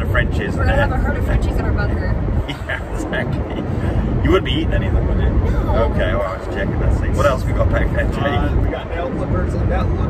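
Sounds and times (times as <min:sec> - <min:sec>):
car road and engine rumble: 0:00.0 - 0:10.0
passengers talking: 0:00.0 - 0:10.0
passengers laughing: 0:02.3 - 0:04.2.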